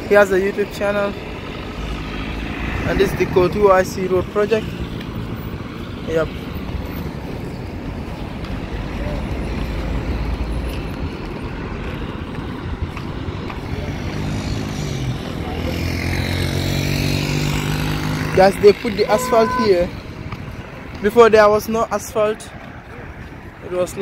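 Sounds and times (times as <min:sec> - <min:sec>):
traffic rumble: 0:00.0 - 0:24.0
motorcycle engine approaching: 0:00.4 - 0:06.0, 0:13.6 - 0:20.2.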